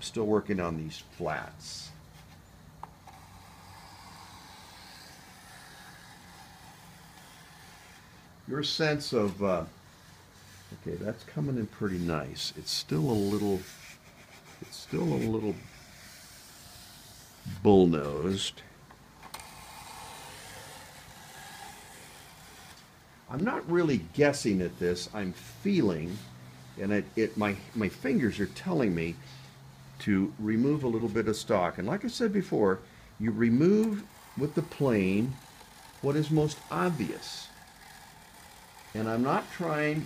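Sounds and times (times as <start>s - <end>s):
hand plane shaving wood: 3.0s - 18.4s, 19.3s - 29.6s, 33.4s - 40.0s.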